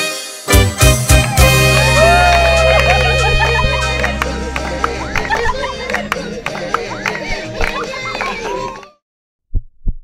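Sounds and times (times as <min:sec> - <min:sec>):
music: 0:00.0 - 0:09.0
party voices: 0:01.4 - 0:09.0
low heartbeat thumps: 0:09.5 - 0:10.0.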